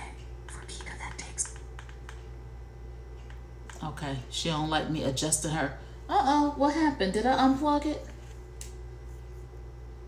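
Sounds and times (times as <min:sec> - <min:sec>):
person whispering: 0:00.0 - 0:01.6.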